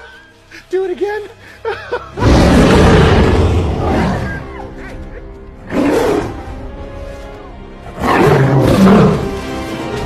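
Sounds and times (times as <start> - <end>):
film music: 0.0 - 10.0
loud animal roar: 2.2 - 4.4.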